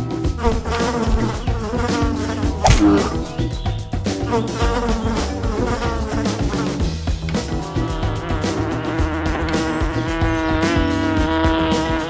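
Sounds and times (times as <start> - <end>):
cartoon bee buzzing: 0.4 - 3.6
sharp hit: 2.6 - 3.6.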